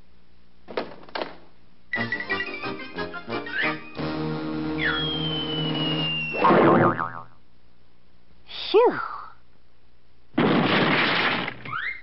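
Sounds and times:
orchestral chord: 2.7s - 5.0s
falling high note: 3.5s - 7.2s
downward whistle slide: 4.7s - 7.0s
cartoon bonk with boing: 6.4s - 7.3s.

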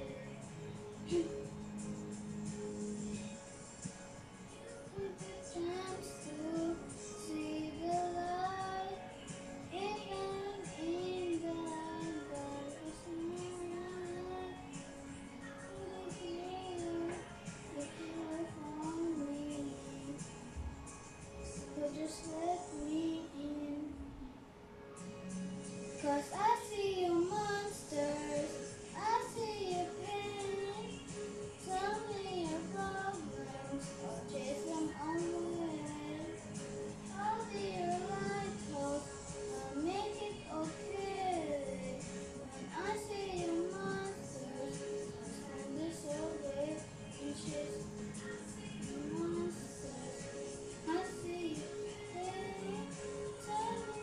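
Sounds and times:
karaoke backing track: 0.0s - 24.3s, 25.0s - 54.0s
child singing: 4.6s - 20.6s, 21.7s - 24.0s, 26.0s - 54.0s.

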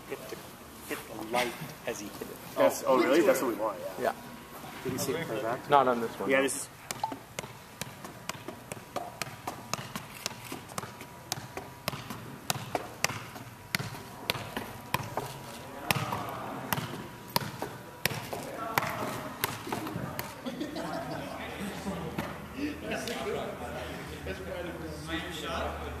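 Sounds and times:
foot tapping soccer ball: 6.9s - 20.4s.

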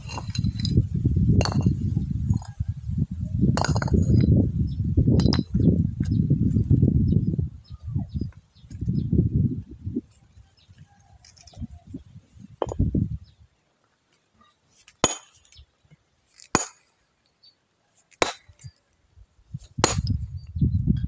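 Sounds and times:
stone clinking on stone: 1.4s - 2.6s, 3.6s - 4.3s.

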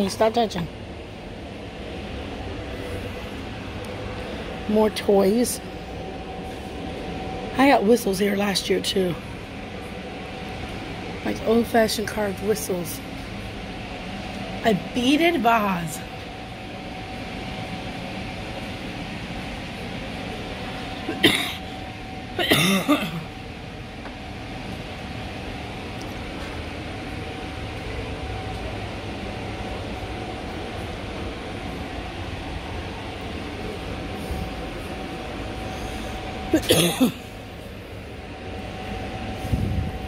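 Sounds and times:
ventilation hum: 0.0s - 40.0s
person coughing: 21.0s - 21.7s, 22.4s - 23.3s, 36.5s - 37.3s.

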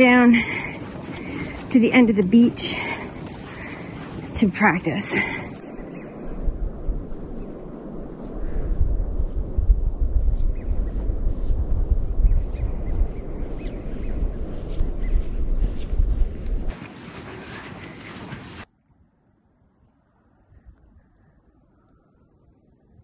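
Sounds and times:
wind buffeting microphone: 0.0s - 18.7s.

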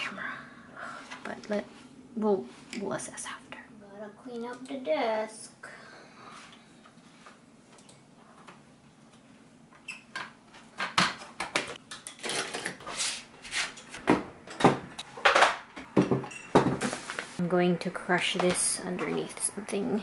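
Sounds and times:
art supplies knocking and clattering: 10.2s - 12.8s, 14.0s - 16.9s.

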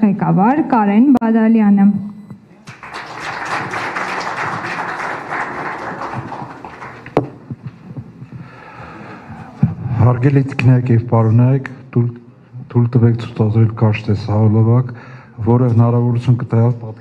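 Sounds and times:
audience applauding: 2.6s - 7.5s.

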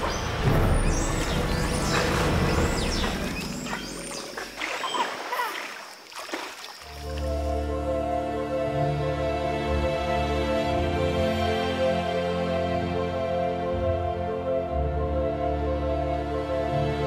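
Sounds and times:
music with long held notes: 7.0s - 17.0s.

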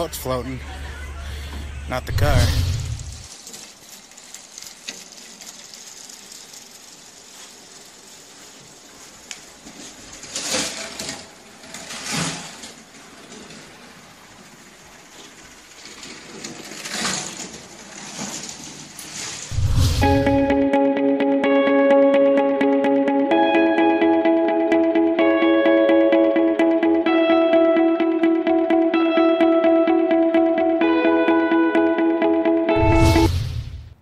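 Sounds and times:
plastic toy train rattling: 3.2s - 19.5s.

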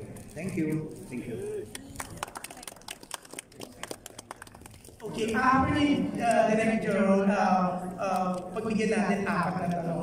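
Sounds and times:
people clapping unevenly: 1.6s - 5.4s.

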